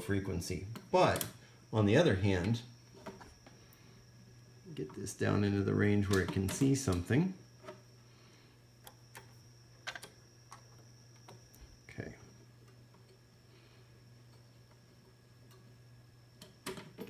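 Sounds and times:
faint steady hum: 0:00.0 - 0:17.0
thin high whine: 0:00.0 - 0:17.0.

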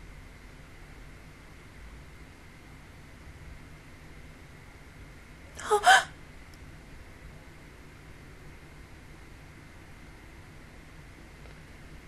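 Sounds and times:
woman gasping: 0:05.6 - 0:06.1.

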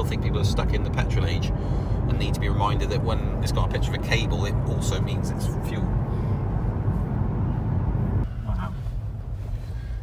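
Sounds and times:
tyre and road rumble in car cabin: 0:00.0 - 0:10.0.

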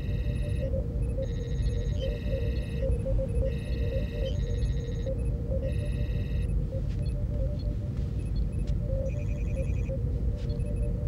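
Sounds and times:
warbling electronic chirps: 0:00.0 - 0:07.1
low steady hum: 0:00.0 - 0:11.0
soft computer blips: 0:00.0 - 0:11.0.

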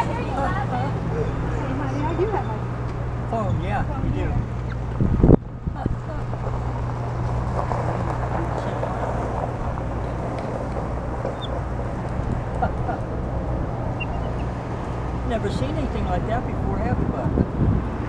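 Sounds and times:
low hum: 0:00.0 - 0:15.5.

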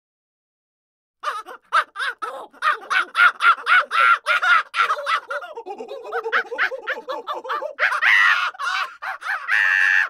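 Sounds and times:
monkey-like laughing calls: 0:01.2 - 0:10.0.

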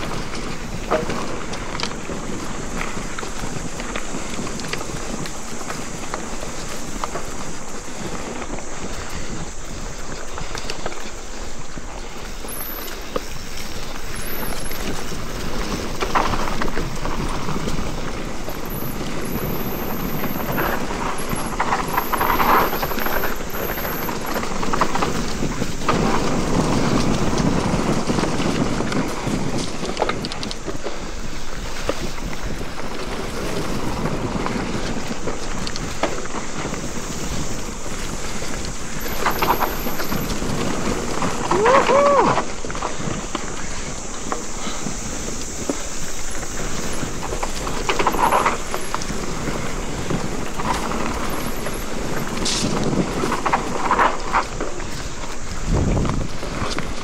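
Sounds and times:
bike knocking and rattling: 0:00.0 - 0:57.0
tyres rushing on dirt: 0:00.0 - 0:57.0
wind on microphone: 0:00.0 - 0:57.0.

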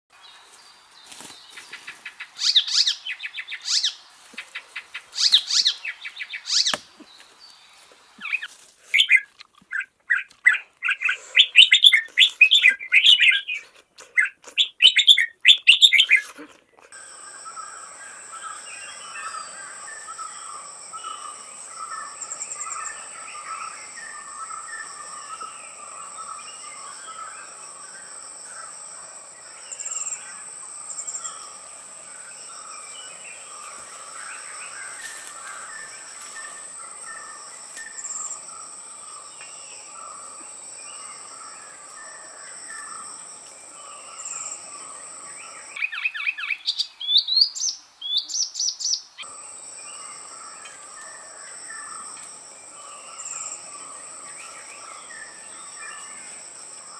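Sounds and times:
birds trilled chatter: 0:16.9 - 0:52.1
high insect drone: 0:17.0 - 0:45.9, 0:49.2 - 0:56.9.

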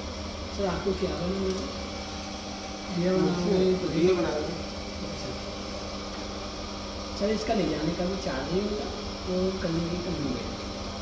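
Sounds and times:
potter's wheel humming: 0:00.0 - 0:11.0.

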